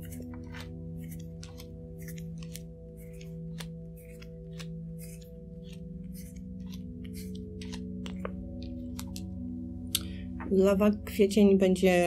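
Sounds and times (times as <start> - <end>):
soft ambient music: 0.0 - 12.0.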